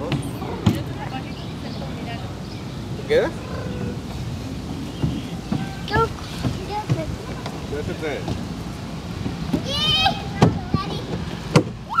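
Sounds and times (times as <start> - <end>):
children calling: 0.0 - 12.0
sharp knocks: 10.4 - 11.8.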